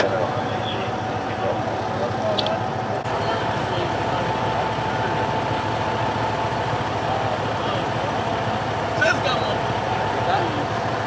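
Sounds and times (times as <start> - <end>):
engine idling with high whine: 0.0 - 11.0.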